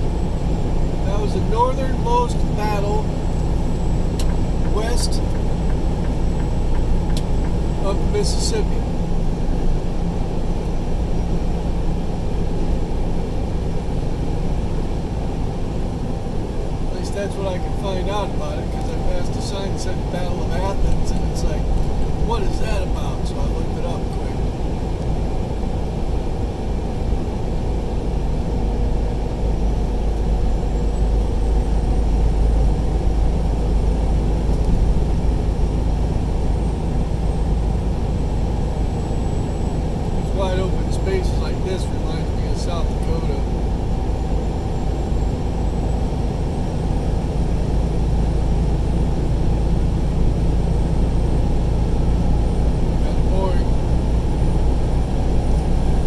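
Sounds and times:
road and engine rumble in cabin: 0.0 - 56.0.

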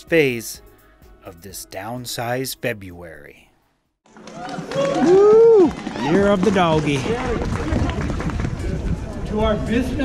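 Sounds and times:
man on public address: 0.0 - 0.6, 1.2 - 3.5, 6.1 - 7.7, 9.2 - 10.0
wind buffeting microphone: 6.2 - 10.0.

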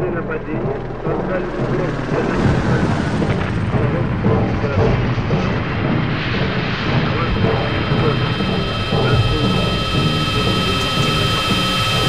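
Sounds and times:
churning low rumble: 0.0 - 12.0
industrial noise drone: 0.0 - 12.0
high-pitched held tones: 7.2 - 12.0.

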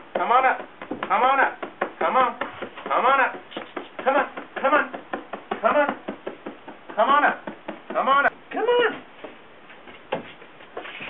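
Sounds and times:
man calling a dog: 0.2 - 6.1, 6.9 - 9.1.

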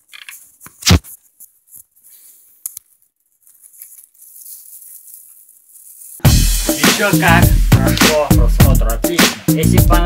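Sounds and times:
plastic bags of kibble rustling: 1.9 - 6.3.

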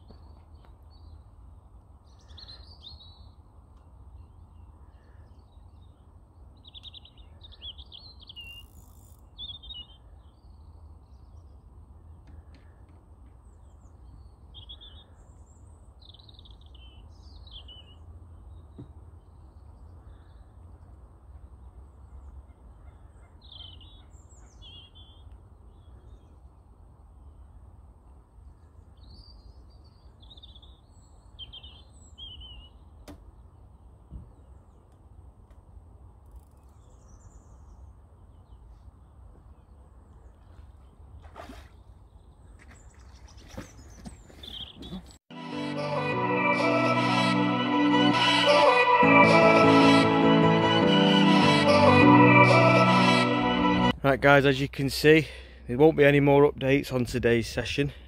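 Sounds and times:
small birds chirping: 41.7 - 45.2.

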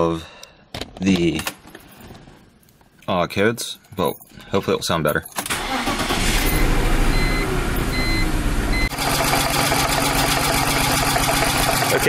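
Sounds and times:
car engine starting and idling rough: 5.4 - 12.0.

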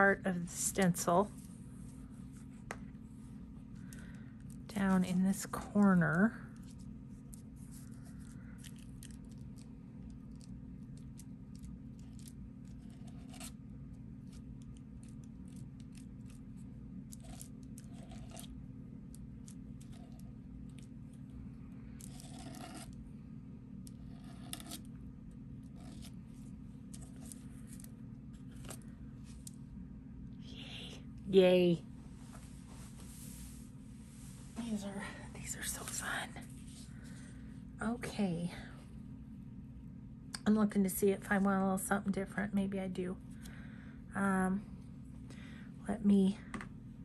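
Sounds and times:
steady low hum: 0.0 - 47.0
palette knife scraping paste: 22.0 - 23.0, 23.9 - 24.9.

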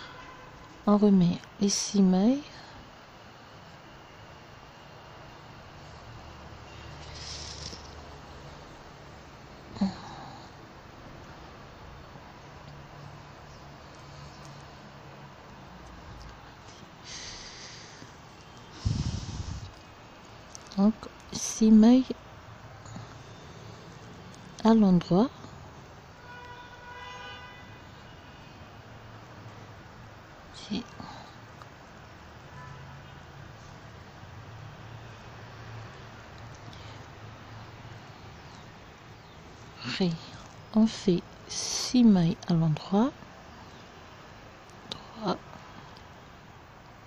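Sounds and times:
low background hum: 0.0 - 26.9, 27.7 - 47.0
hiss: 7.0 - 8.0, 17.0 - 19.8
faint horn: 26.2 - 28.7.

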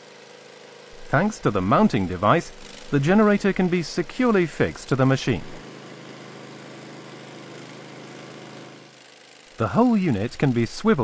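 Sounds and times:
portable generator engine running: 0.4 - 11.0.

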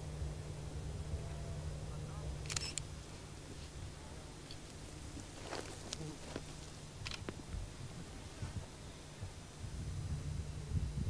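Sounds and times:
low rumble: 0.0 - 11.0
camera shutter clicks: 2.4 - 2.9, 7.0 - 7.3.

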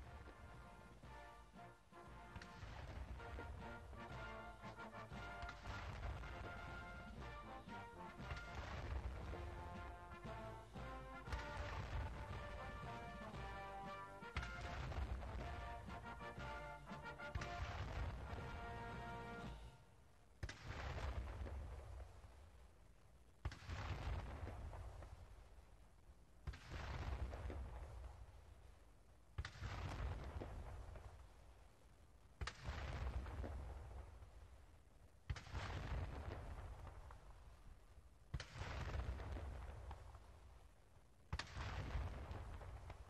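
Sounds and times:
cannon booms: 0.0 - 19.6
military band playing a march: 0.0 - 19.8.

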